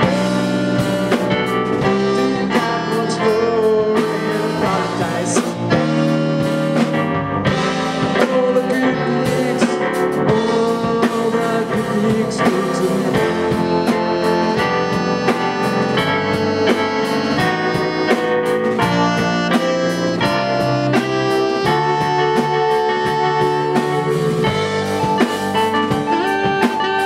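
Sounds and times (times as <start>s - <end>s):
drum kit: 0.0s - 27.0s
electric organ: 0.0s - 27.0s
guitar: 0.0s - 27.0s
saxophone lines: 0.0s - 27.0s.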